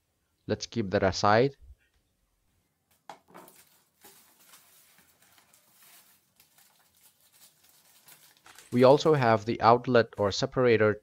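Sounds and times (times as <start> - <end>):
paper rustling and crinkling: 3.2 - 9.4.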